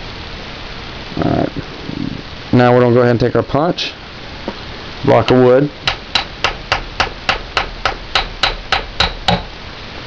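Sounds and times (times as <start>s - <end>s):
mallet tapping steel pin punch: 5.3s - 9.6s.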